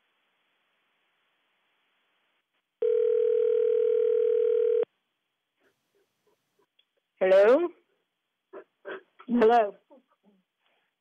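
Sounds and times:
steady telephone line tone: 0:02.8 - 0:04.9.

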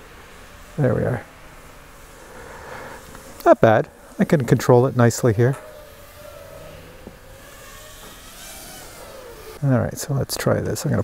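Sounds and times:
drone motors whining: 0:00.0 - 0:11.0.

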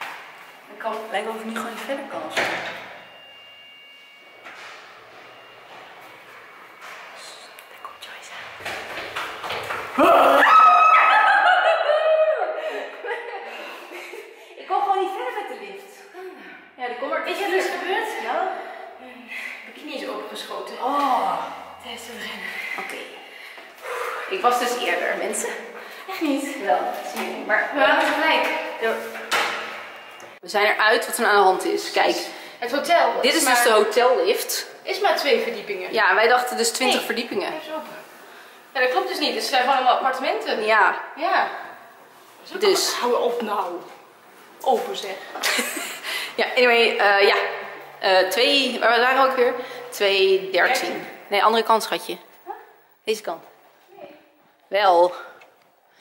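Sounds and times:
woman talking: 0:00.7 - 0:02.6, 0:14.6 - 0:23.2, 0:24.2 - 0:29.2, 0:30.4 - 0:38.0, 0:38.7 - 0:41.7, 0:42.4 - 0:44.0, 0:44.6 - 0:45.7, 0:46.4 - 0:55.4
lift electronic chime: 0:02.0 - 0:08.6.

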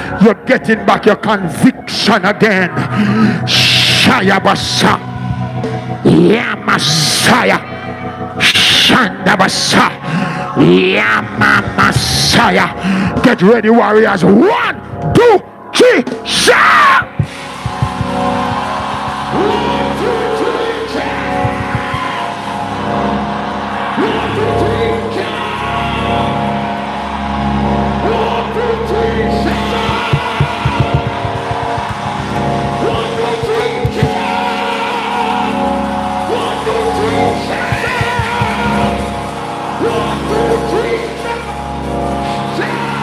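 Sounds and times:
live church praise music: 0:00.0 - 0:43.0
drum-like hits: 0:17.1 - 0:18.7, 0:21.4 - 0:22.3, 0:29.8 - 0:34.3, 0:37.6 - 0:38.9.

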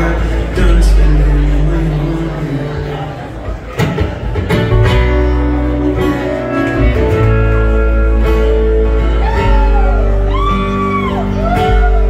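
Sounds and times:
electric guitar: 0:00.0 - 0:12.0
strummed acoustic guitar: 0:00.0 - 0:12.0
upright bass: 0:00.0 - 0:12.0.

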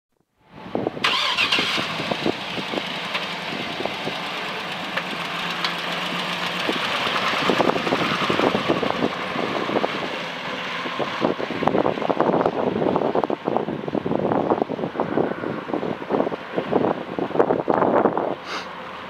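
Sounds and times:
car engine starting and idling: 0:00.6 - 0:15.0.

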